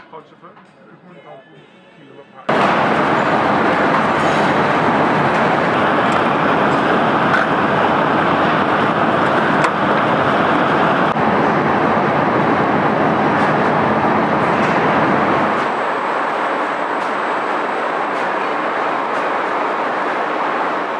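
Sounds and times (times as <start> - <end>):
machinery rumble and hiss: 2.5 - 20.9.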